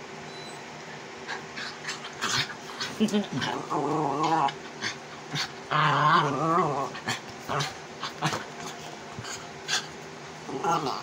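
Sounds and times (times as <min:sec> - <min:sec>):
small dog play-growling: 0:01.2 - 0:11.0.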